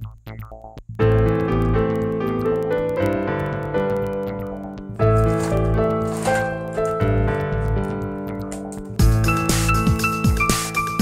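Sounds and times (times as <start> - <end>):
keyboard melody of held notes: 0.0 - 11.0.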